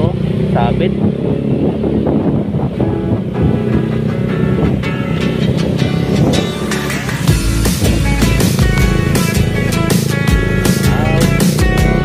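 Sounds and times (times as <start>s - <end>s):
motorcycle engine running: 0.0s - 12.0s
music with a beat: 3.5s - 12.0s.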